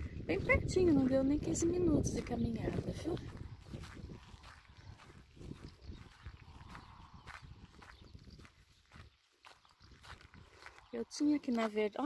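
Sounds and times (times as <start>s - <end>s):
footsteps on dirt track: 0.0s - 12.0s.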